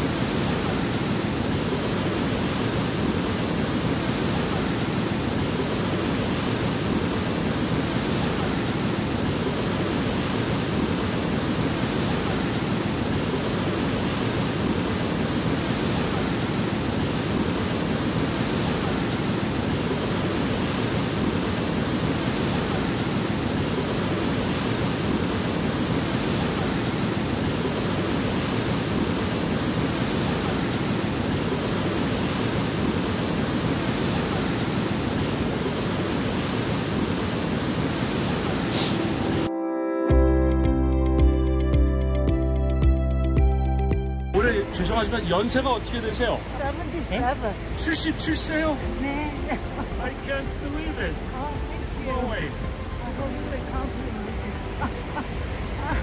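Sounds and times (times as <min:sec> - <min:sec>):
river rushing over rocks: 0:00.0 - 0:39.5, 0:44.6 - 0:56.0.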